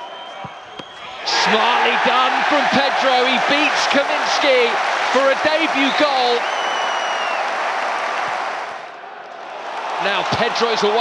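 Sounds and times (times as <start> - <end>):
thin whistle: 0.0 - 1.1, 6.4 - 7.4
crowd applauding and cheering: 0.0 - 11.0.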